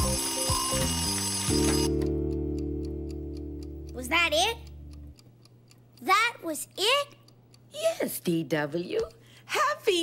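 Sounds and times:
alarm clock bell ringing: 0.0 - 2.0
held low music chord: 0.0 - 5.2
clock ticking: 0.0 - 10.0.

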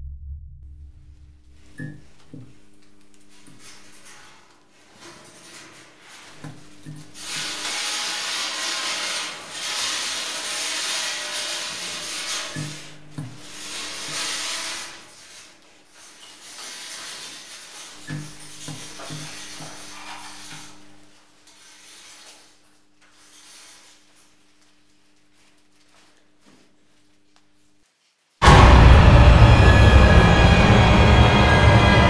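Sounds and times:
low held drone: 0.0 - 1.9, 28.4 - 32.0
soft low thumps: 0.0 - 2.5.

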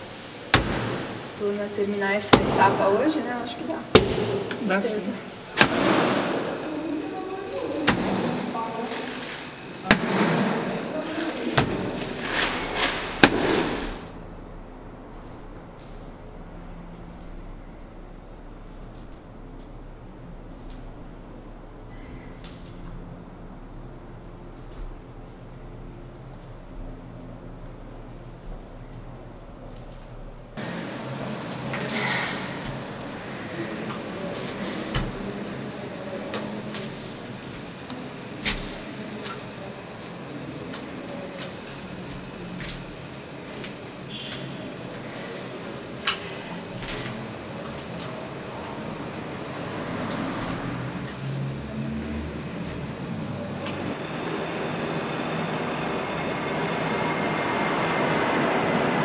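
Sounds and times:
indistinct voices: 0.0 - 59.0
low steady hum: 0.0 - 59.0.

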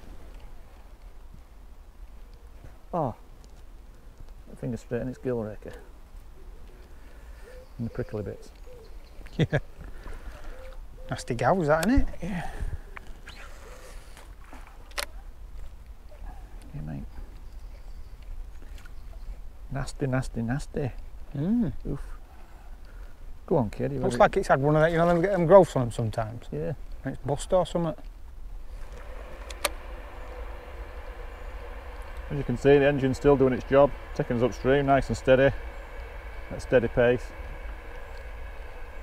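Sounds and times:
low steady rumble: 0.0 - 39.0
electric trolling motor running: 28.5 - 39.0
sharp click: 28.9 - 29.8.

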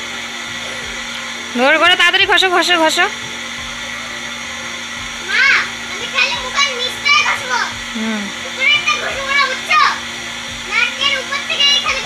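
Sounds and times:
steady hum and hiss: 0.0 - 1.5.

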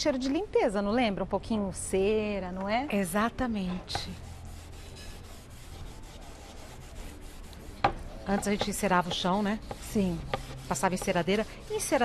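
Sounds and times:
cloth scrubbing on wood: 4.0 - 12.0.

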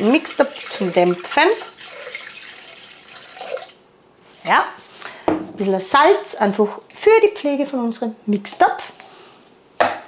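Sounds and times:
water pouring into metal bowl: 0.0 - 3.8.

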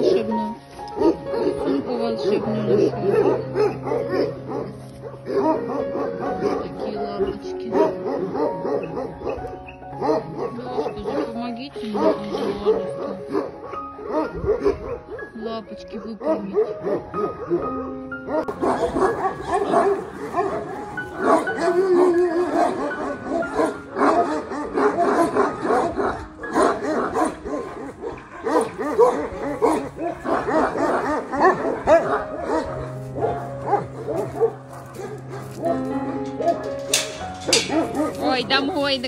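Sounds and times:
background music: 0.0 - 39.0
dogs barking and yipping: 0.0 - 39.0.

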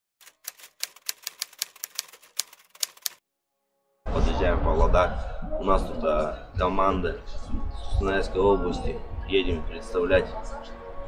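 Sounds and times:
typewriter clacks: 0.2 - 3.2.

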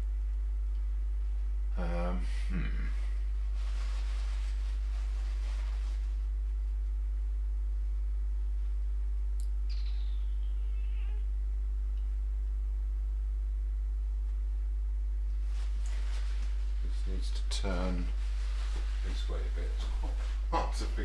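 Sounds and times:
low electrical hum: 0.0 - 21.0
small click: 9.4 - 9.6
high-pitched gliding chirp: 9.7 - 11.2.

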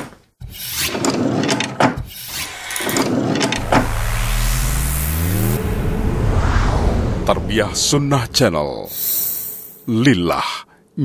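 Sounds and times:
rising sweep: 2.4 - 9.0.

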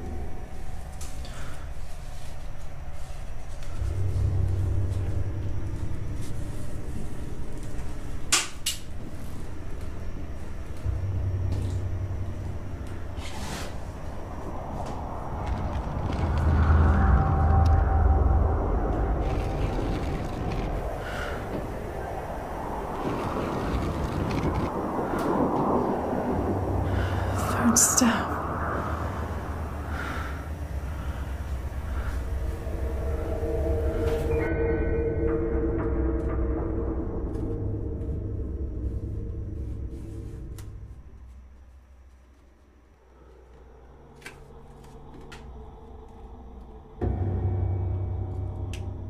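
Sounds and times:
low rumbling drone: 0.0 - 49.0.

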